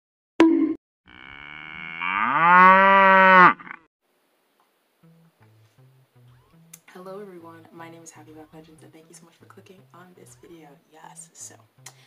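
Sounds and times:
cow mooing: 1.1 - 3.9.

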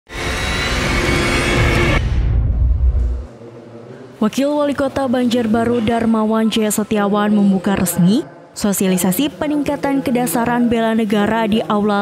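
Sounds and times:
low rumble: 1.0 - 3.3.

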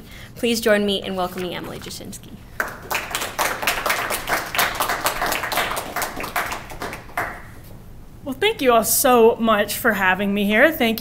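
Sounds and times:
audience applauding: 2.6 - 7.6.

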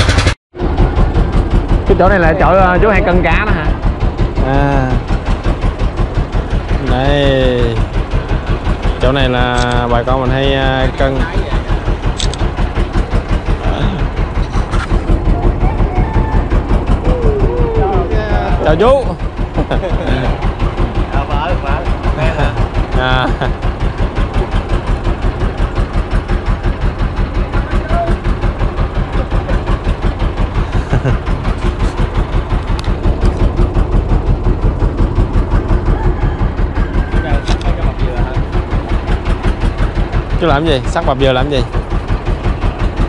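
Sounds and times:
boat engine running: 0.0 - 43.0.

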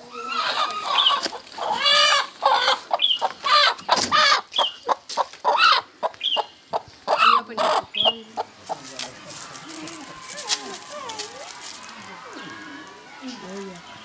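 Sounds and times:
chicken cackling in alarm: 0.0 - 12.9.

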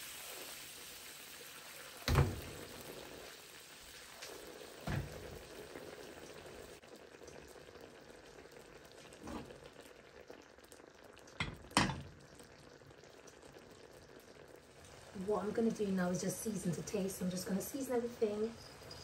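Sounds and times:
food simmering in frying pan: 0.0 - 19.0.

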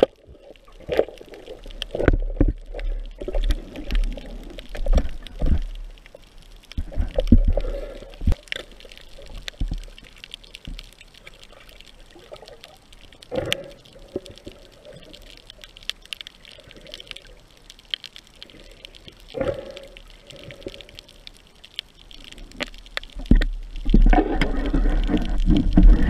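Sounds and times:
fine underwater clicks crackling: 0.0 - 26.0
rush of moving water: 22.1 - 26.0.

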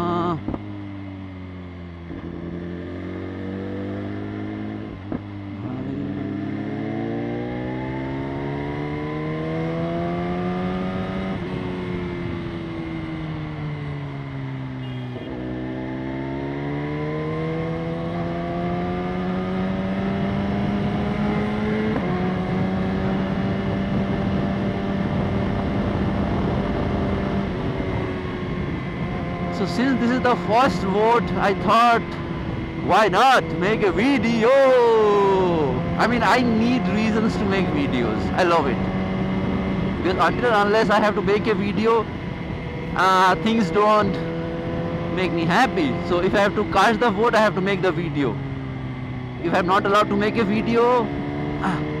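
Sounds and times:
motorcycle engine revving: 0.0 - 52.0.

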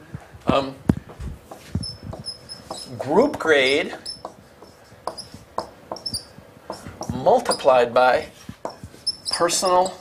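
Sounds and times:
marker squeaking on whiteboard: 1.5 - 7.8, 8.4 - 10.0.

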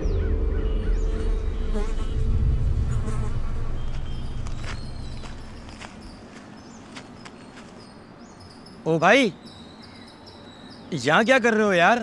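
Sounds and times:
low buzzing hum: 0.0 - 6.6
faint bird chirps: 3.2 - 11.5.

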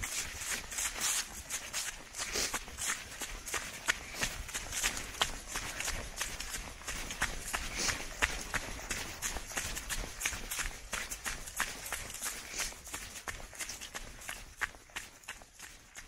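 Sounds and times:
running footsteps on leaves: 0.0 - 16.0.

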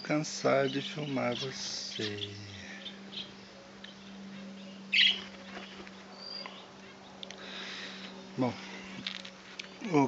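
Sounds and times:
bird chirp: 0.0 - 10.0
steady low hum: 0.0 - 10.0.

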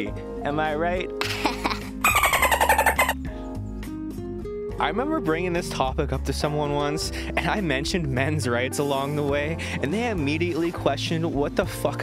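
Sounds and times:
backing music track: 0.4 - 12.0.

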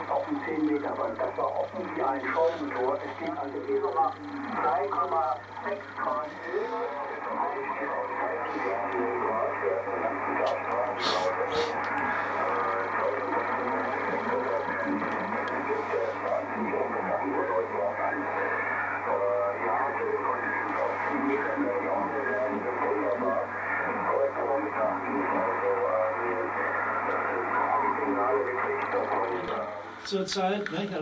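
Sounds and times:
speech over radio loudspeaker: 0.0 - 31.0.

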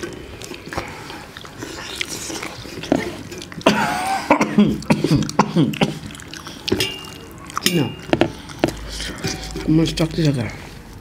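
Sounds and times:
person coughing: 3.6 - 6.1.

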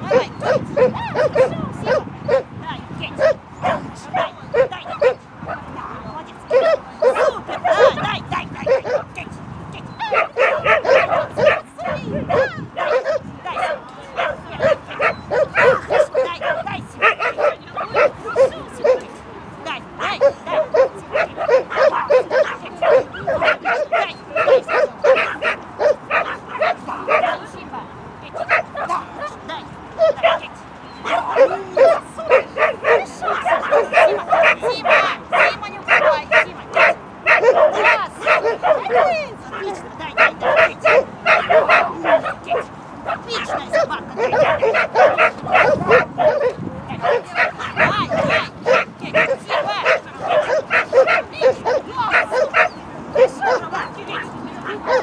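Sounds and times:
dog barking rapidly: 0.0 - 2.5, 3.1 - 9.1, 10.0 - 19.1, 20.0 - 27.5, 28.3 - 29.4, 30.0 - 55.0.

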